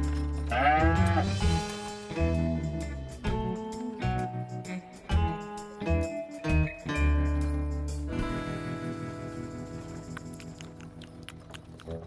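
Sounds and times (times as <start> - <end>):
strummed guitar music: 0.0 - 10.6
cartoon cow bleat-like cry: 0.5 - 1.4.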